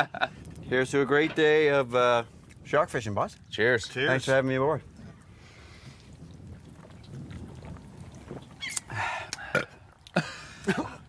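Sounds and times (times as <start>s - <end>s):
men drinking from cans: 4.9s - 11.0s
breathy exhale: 5.3s - 6.1s, 8.9s - 9.8s
mouth clicks: 8.5s - 10.2s.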